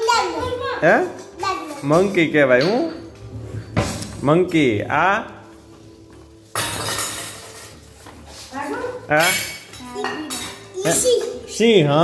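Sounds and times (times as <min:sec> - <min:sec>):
children's high-pitched voices: 0:00.0 - 0:00.8.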